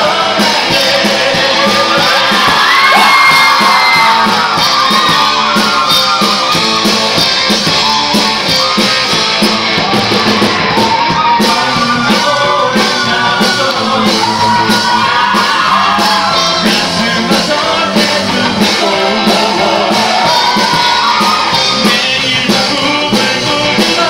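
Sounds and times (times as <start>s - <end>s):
man and woman singing: 0.0s - 5.1s, 11.2s - 24.0s
drum kit beat: 0.0s - 24.0s.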